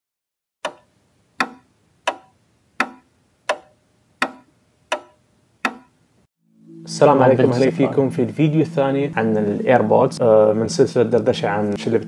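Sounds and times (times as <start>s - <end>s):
sharp ticking: 0.6s - 5.9s.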